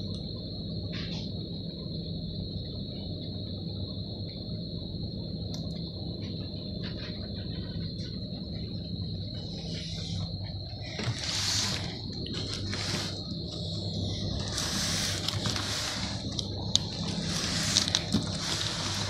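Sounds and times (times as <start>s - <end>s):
high-pitched whine: 0.0s - 19.0s
low background hum: 0.0s - 19.0s.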